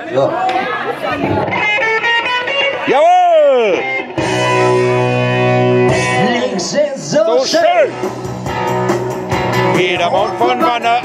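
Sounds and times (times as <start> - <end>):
electric guitar playing: 1.1 - 11.0.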